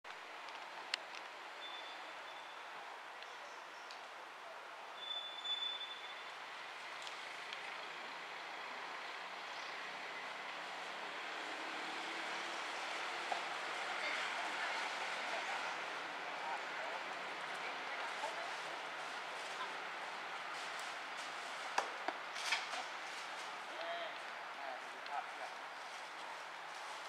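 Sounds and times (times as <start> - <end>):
outdoor background hiss: 0.1 - 27.0
short high whistles: 5.0 - 6.2.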